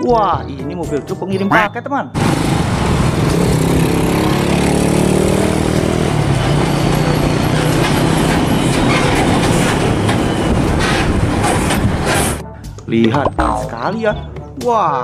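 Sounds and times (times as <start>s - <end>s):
truck driving past: 2.2s - 12.4s.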